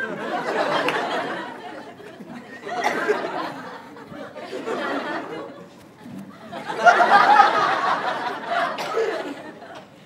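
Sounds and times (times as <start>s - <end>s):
audience chattering and laughing: 0.0s - 10.0s.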